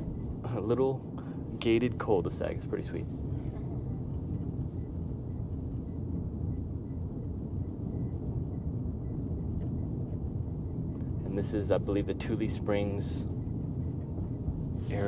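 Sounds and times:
road and tyre rumble: 9.5 - 15.0.

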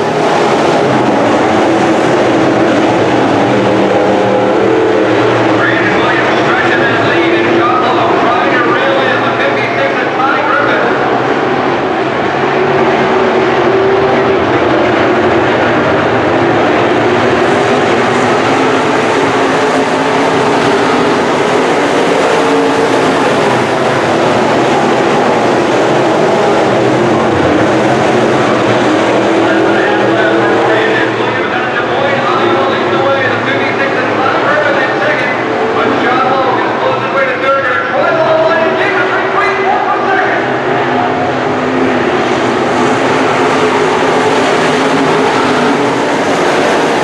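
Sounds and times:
race car engines droning: 0.0 - 47.0.

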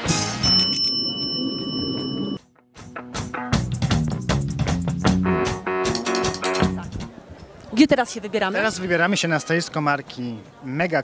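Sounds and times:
background music: 0.0 - 1.0, 2.6 - 7.1.

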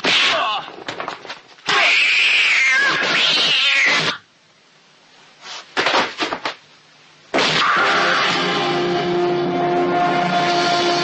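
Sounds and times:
loud cat-like screech: 1.7 - 4.2, 7.4 - 8.7.

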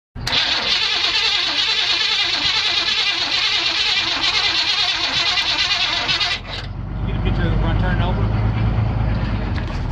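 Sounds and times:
starter cranking engine: 0.2 - 6.7.

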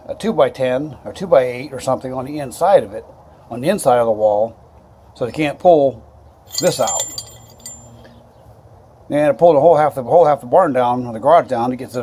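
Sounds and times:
metal bolt and washer clinking: 6.5 - 8.0.

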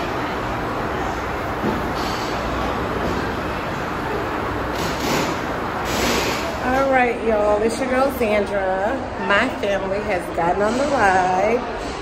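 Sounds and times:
rumbling din of ride station: 0.0 - 12.0
woman speaking: 6.6 - 11.7.

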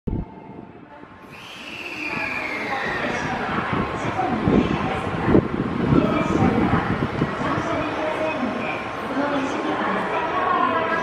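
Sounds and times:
electric train rumbling: 0.1 - 11.0
high brake squeal: 1.3 - 3.2.

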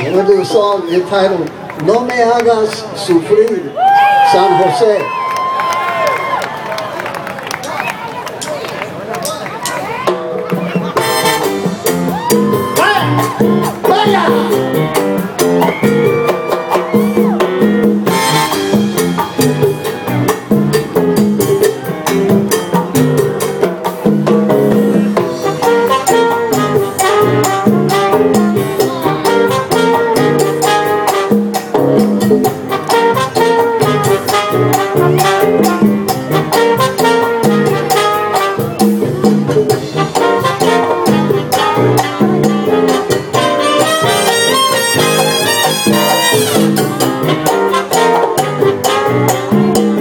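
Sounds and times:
latin band playing salsa: 0.0 - 1.8, 7.6 - 50.0
congas and timbales: 7.6 - 50.0.

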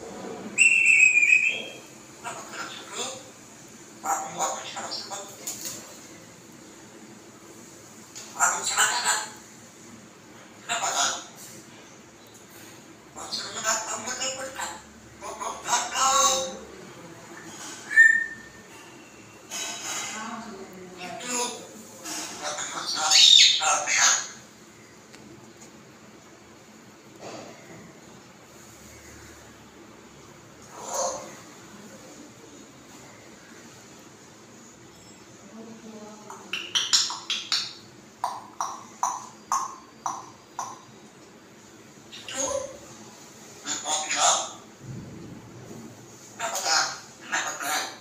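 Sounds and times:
parrot whistle: 0.6 - 1.7, 17.9 - 18.6.

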